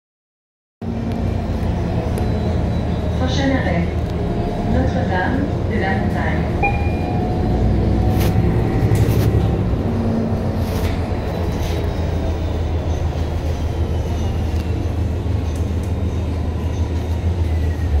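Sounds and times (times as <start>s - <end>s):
bus engine and tyres rumbling: 0.8s - 18.0s.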